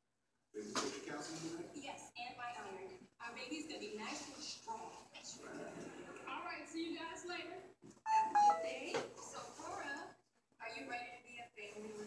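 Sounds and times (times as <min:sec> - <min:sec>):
three-note electronic chime: 0:08.1 - 0:08.9.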